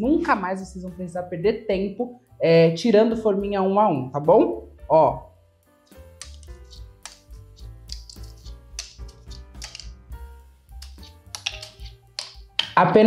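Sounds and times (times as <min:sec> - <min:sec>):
quiet background music: 0:00.0 - 0:13.0
light clicks of candy cups: 0:05.9 - 0:09.9, 0:10.7 - 0:12.8.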